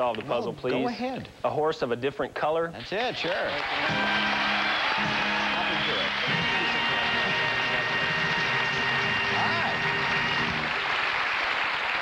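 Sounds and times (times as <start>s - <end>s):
audience applauding: 3.2s - 12.0s.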